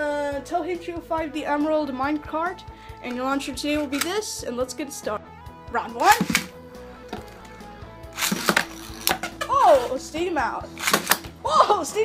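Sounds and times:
ripcord launcher rip: 6.1 - 6.6, 8.1 - 10.0, 10.8 - 11.3.

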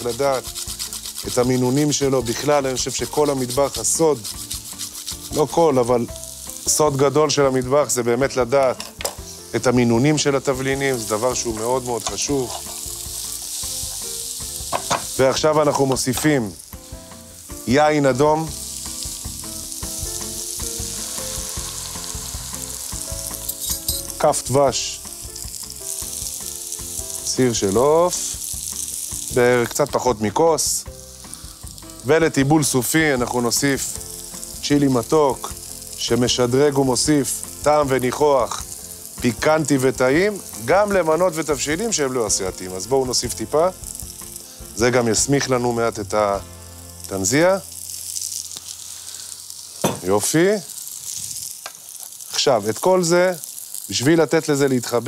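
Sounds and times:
stew sizzling in a pot: 0.0 - 55.0.

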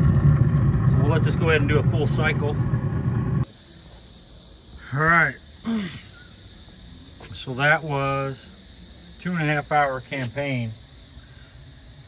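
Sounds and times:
grill fire roaring: 0.0 - 3.5
steady high hiss: 3.4 - 12.0.

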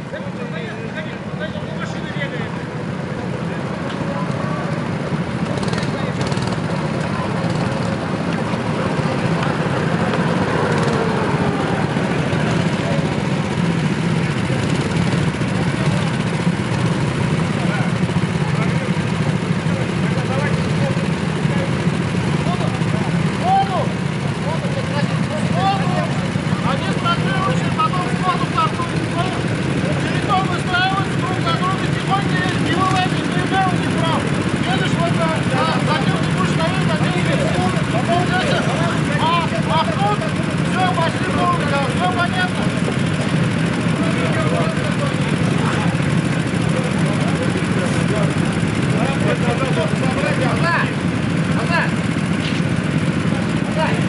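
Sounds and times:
go-kart engines idling: 0.0 - 54.0
people talking: 0.0 - 54.0.

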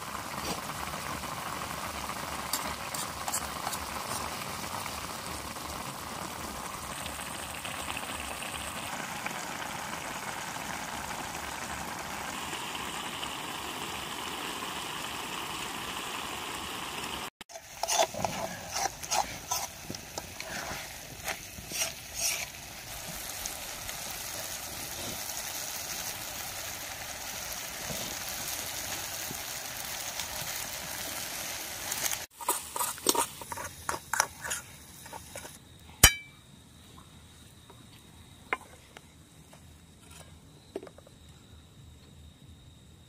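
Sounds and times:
broth bubbling in a wok: 0.0 - 36.3
metal spoon scraping a wok: 17.5 - 22.6, 32.4 - 36.2.

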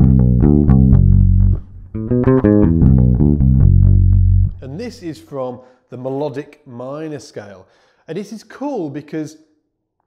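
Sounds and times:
electric bass guitar riff: 0.0 - 5.1.

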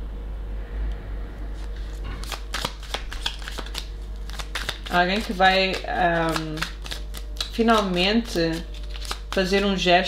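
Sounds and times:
cards being shuffled: 1.6 - 10.0.

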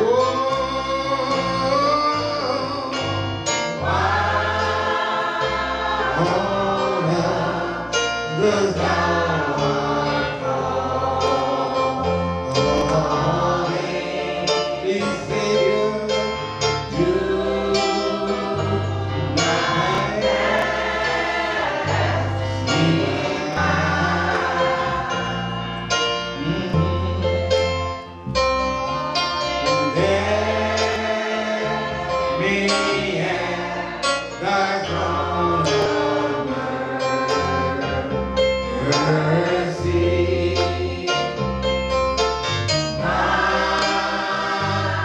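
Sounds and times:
man singing into a microphone: 0.0 - 3.2, 14.8 - 16.4, 38.7 - 41.2
choir holding long notes: 0.0 - 27.4, 29.6 - 41.5, 42.6 - 45.0
congregation singing: 0.0 - 45.0
low instrumental accompaniment: 0.0 - 45.0.

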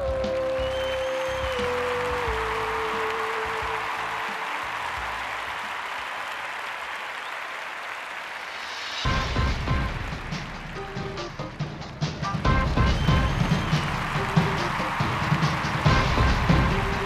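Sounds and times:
audience applause: 0.0 - 17.0.

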